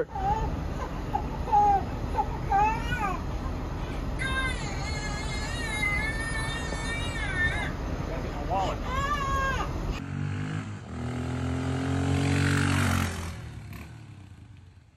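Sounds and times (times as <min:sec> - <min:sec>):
baby crying through speaker: 0:00.0 - 0:03.4, 0:04.2 - 0:07.8, 0:08.5 - 0:09.7.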